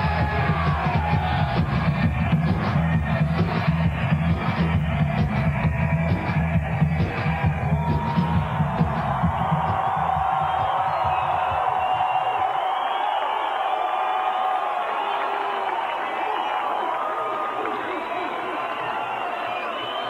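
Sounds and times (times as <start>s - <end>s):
crowd cheering: 0.0s - 20.0s.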